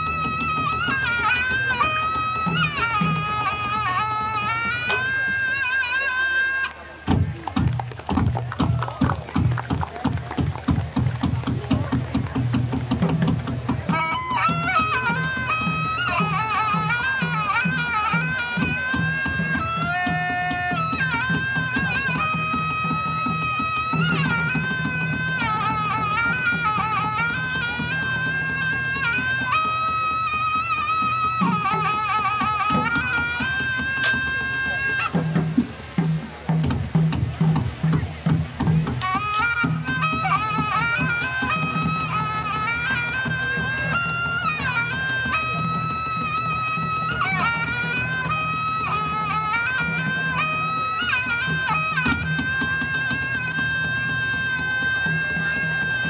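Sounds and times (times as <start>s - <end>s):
reedy wind instrument melody: 0.0s - 56.0s
fast drum beats: 6.9s - 56.0s.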